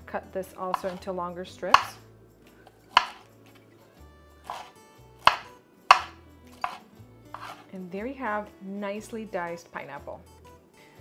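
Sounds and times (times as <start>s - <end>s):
knife chopping on wooden board: 0.7s - 1.0s, 1.7s - 2.0s, 2.9s - 3.3s, 4.4s - 7.6s.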